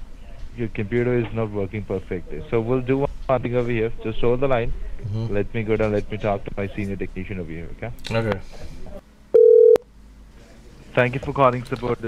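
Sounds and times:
buzzy telephone line beep: 9.4s - 9.8s.

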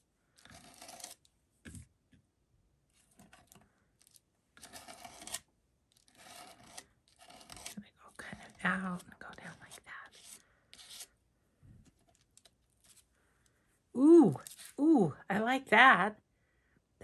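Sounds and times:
palette knife scraping paper: 0.3s - 1.3s, 3.1s - 11.2s.

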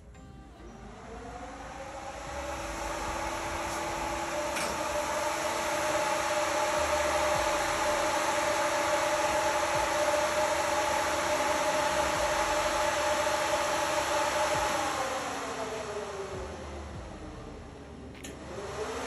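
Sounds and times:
motor humming: 0.0s - 19.0s.

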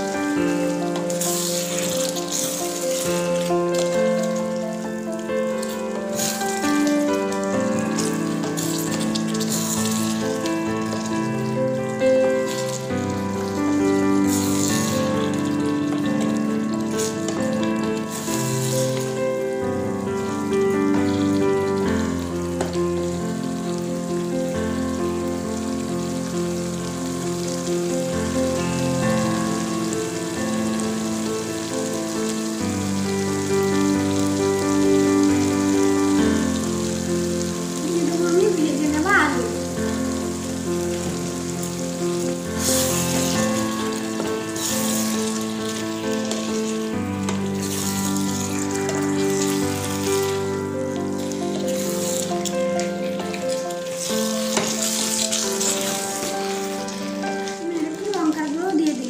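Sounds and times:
background music chords: 0.0s - 58.6s
curry sizzling in a pan: 0.0s - 59.0s
spatula stirring in pan: 8.0s - 10.1s.

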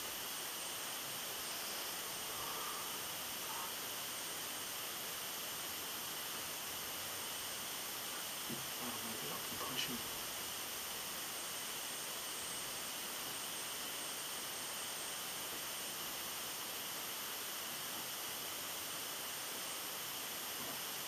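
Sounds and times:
steady outdoor hiss: 0.0s - 21.0s.

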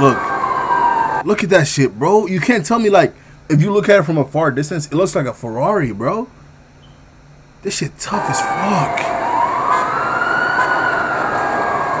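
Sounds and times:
siren wailing: 0.0s - 1.3s, 8.0s - 12.0s.

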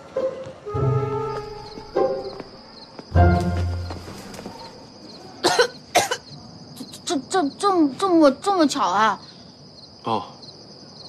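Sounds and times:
person coughing: 5.4s - 6.3s.

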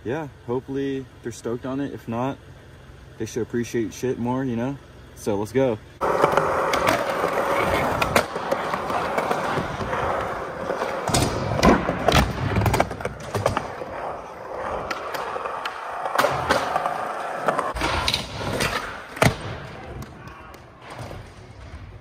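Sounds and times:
skateboard wheels rolling on concrete: 6.0s - 19.7s
skateboard clacks: 6.0s - 20.7s.

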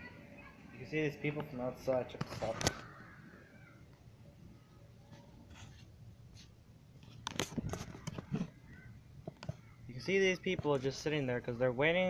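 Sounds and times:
knocks and rustling: 5.4s - 9.8s, 10.4s - 11.1s.

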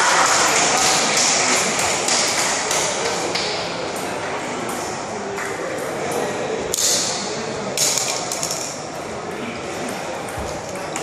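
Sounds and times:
spectators chattering: 0.0s - 11.0s
table tennis ball hits and bounces: 0.1s - 11.0s.

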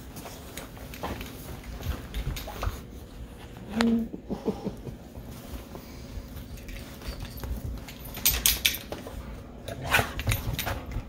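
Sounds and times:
dogs pawing at cat on sofa: 0.0s - 3.7s, 4.9s - 11.0s.

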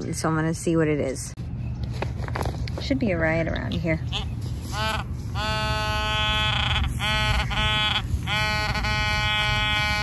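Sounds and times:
metal detector buzzing tone: 4.1s - 10.0s.

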